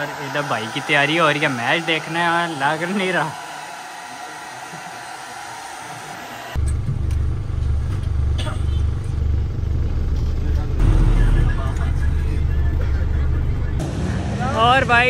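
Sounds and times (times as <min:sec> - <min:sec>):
minibus engine rumble: 0:06.5 - 0:14.4
road noise inside vehicle: 0:06.5 - 0:14.5.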